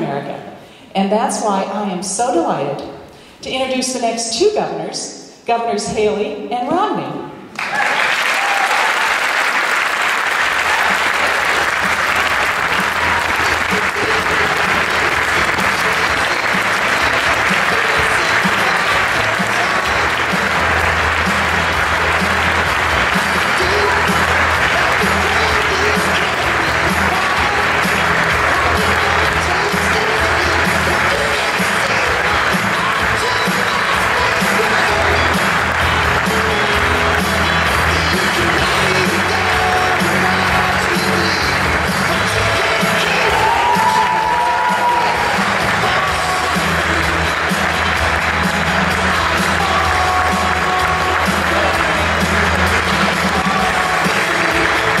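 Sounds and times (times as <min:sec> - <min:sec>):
audience applauding: 0:07.5 - 0:55.0
music with steady beat: 0:10.8 - 0:55.0.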